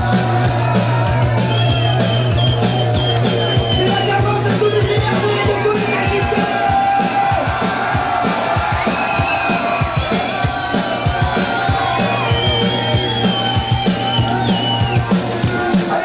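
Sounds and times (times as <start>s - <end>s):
fast driving drum beat: 0.0s - 16.0s.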